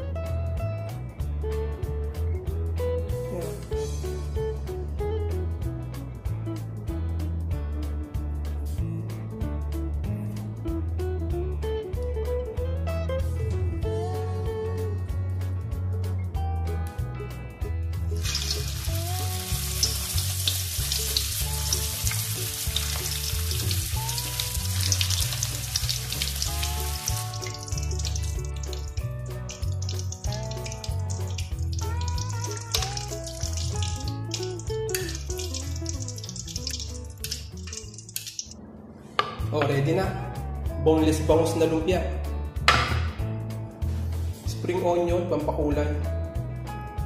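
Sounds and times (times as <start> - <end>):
background guitar music: 0.0 - 38.6, 39.2 - 47.0
food sizzling in hot oil: 18.1 - 38.6.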